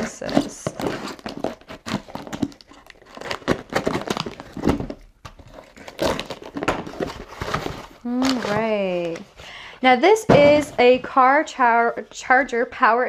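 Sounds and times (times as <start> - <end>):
cardboard flaps scraping and rustling: 3.2 - 9.2.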